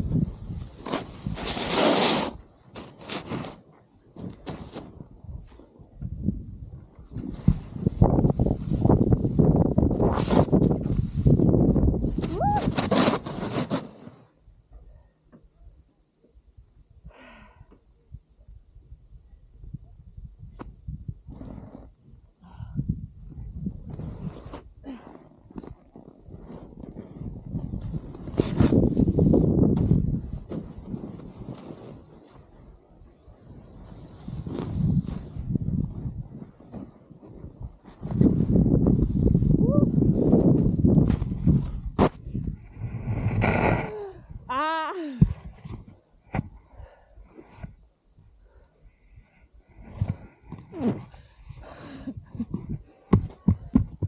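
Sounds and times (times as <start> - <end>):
snowboard rushing through powder snow: 0.6 - 3.6, 30.4 - 37.1.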